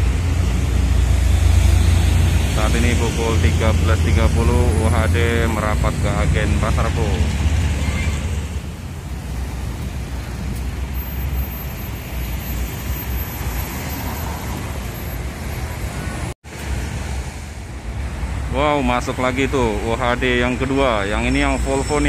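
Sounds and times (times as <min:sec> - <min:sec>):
coach engine rumble: 0:00.0 - 0:16.3
road traffic noise: 0:00.0 - 0:22.0.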